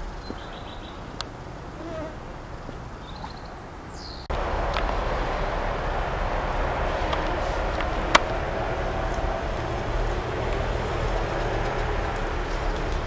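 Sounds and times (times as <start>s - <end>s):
heavy machinery working: 4.3s - 13.0s.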